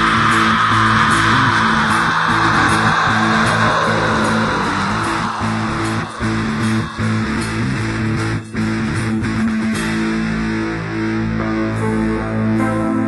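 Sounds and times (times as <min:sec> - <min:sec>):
guitar-led band instrumental: 0:00.0 - 0:13.0.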